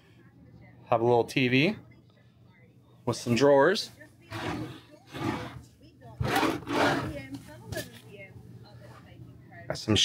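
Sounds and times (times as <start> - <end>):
wooden drawers scraping: 4.3 - 5.6, 6.2 - 7.2.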